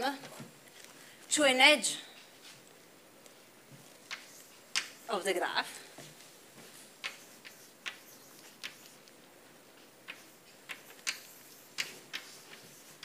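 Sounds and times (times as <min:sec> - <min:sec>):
chalk tapping on blackboard: 0:04.1 - 0:05.1, 0:07.0 - 0:09.0, 0:10.0 - 0:13.0.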